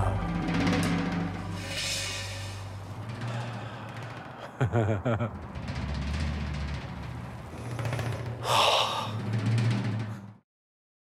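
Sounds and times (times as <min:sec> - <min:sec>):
dramatic music with low drums: 0:00.0 - 0:08.4.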